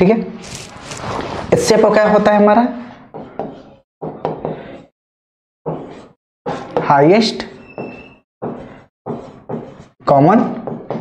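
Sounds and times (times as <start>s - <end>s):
chalk tapping and scraping: 5.7s - 6.8s, 7.8s - 9.9s.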